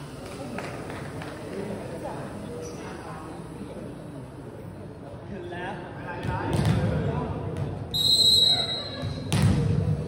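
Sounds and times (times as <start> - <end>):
referee's whistle: 7.9 - 9.0.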